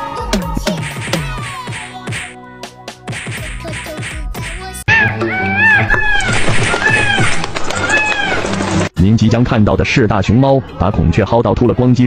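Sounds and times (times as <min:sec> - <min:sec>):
background music: 0:00.0 - 0:06.2.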